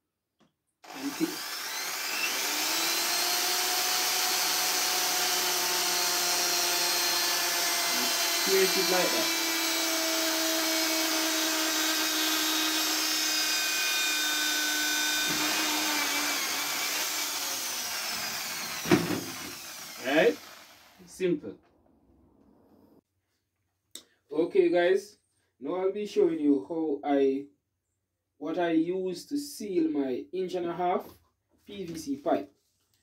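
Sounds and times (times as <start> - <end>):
electric drill whining: 0.8 - 21.0.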